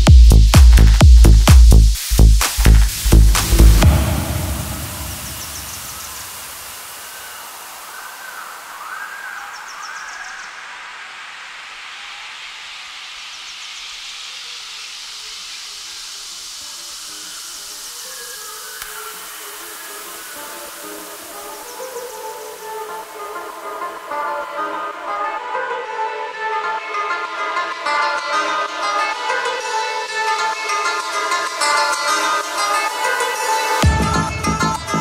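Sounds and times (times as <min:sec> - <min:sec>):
kick drum: 0:00.0 - 0:04.0
hissing noise sweep rising: 0:01.7 - 0:09.1, 0:10.4 - 0:24.7.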